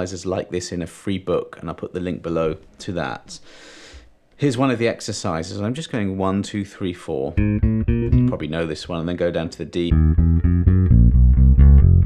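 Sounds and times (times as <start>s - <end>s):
electric bass fingerstyle notes: 7.3s - 8.9s, 9.8s - 12.0s.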